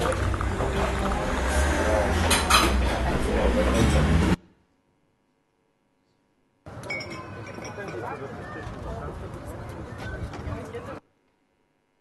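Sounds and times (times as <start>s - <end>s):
china and dishes clinking: 6.8s - 8.3s
people chatting: 7.1s - 11.0s.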